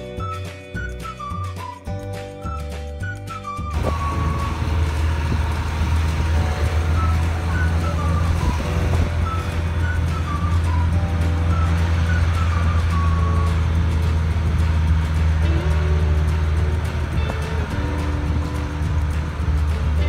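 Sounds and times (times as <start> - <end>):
background music melody: 0.0 - 20.0
vehicle engine droning: 3.6 - 20.0.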